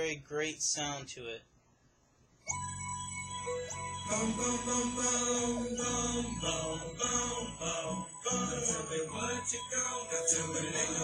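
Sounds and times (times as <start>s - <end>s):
music with sustained chords: 2.5s - 11.0s.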